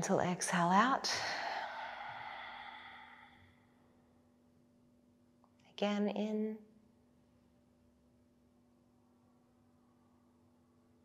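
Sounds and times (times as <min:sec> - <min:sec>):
person exhaling gently: 0:01.1 - 0:03.5.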